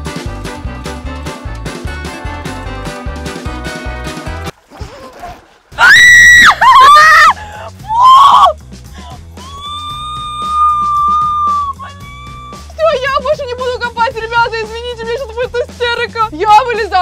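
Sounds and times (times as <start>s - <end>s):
background music with bass beat: 0.0s - 4.5s
woman screaming: 5.8s - 8.6s, 9.4s - 13.0s.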